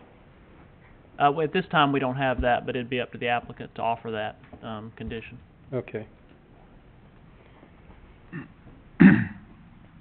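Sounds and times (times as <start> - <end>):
person clearing throat: 8.3 - 9.6.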